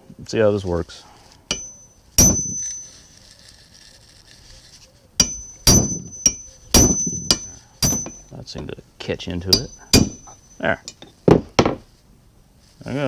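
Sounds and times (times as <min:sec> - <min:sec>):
hammer striking chisel on metal: 0:01.5 - 0:03.0, 0:05.2 - 0:08.7, 0:09.5 - 0:11.8
high metallic ringing: 0:01.5 - 0:03.4, 0:05.2 - 0:08.6, 0:09.4 - 0:11.2.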